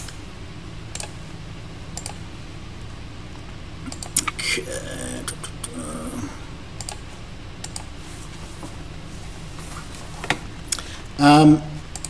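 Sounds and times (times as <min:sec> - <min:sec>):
low steady hum: 0:00.0 - 0:12.0
computer input clicks: 0:00.9 - 0:01.2, 0:02.0 - 0:02.2, 0:03.9 - 0:04.4, 0:06.8 - 0:07.0, 0:07.6 - 0:07.9.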